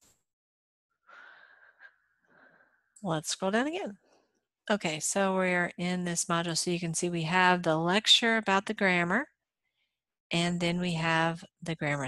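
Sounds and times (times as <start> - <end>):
breathing close to microphone: 1.0 - 3.0.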